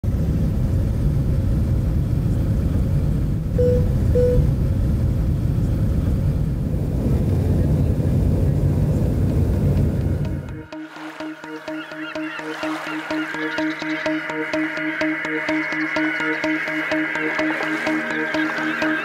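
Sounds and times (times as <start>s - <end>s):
jet engine cabin rumble: 0.1s - 10.2s
short beeps: 3.6s - 4.5s.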